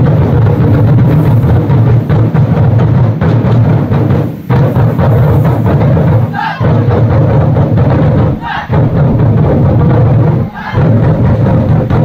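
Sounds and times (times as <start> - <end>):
barrel drums rolling fast: 0.0 - 12.0
drummers shouting in unison: 4.5 - 12.0.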